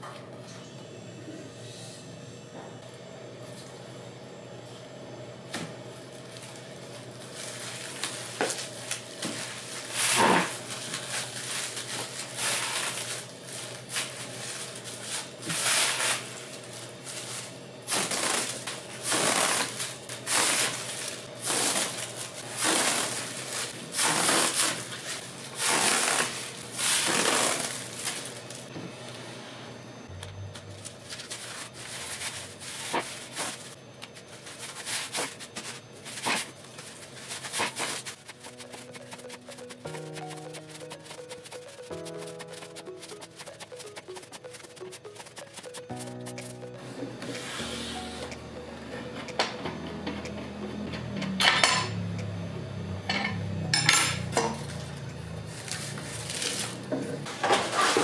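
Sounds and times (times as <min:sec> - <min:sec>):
paper rustling and crunching: 0:06.2 - 0:28.6, 0:30.7 - 0:46.1, 0:55.4 - 0:56.8.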